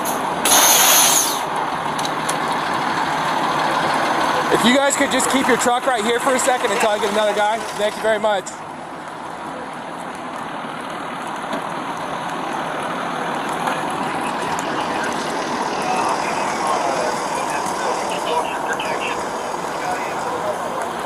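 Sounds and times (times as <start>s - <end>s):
fire engines idling: 0.0s - 21.0s
faint distant voices: 12.6s - 21.0s.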